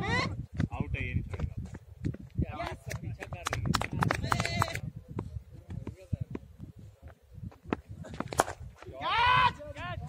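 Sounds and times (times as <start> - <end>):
wind on microphone: 0.0 - 10.0
running footsteps: 0.4 - 9.0.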